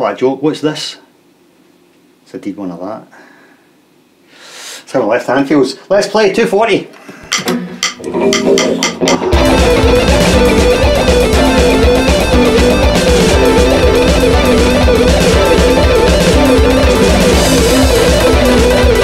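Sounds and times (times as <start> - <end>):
backing track with drum beat: 7.3 - 19.0
fast electric guitar lick: 7.6 - 19.0.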